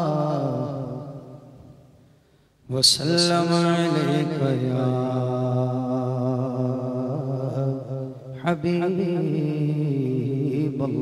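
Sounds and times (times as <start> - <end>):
man chanting: 0.0 - 1.6, 2.7 - 11.0.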